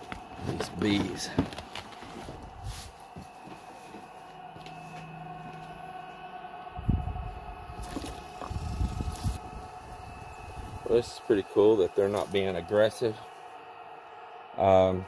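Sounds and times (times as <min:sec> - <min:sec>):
bees humming: 0:02.9 - 0:15.0.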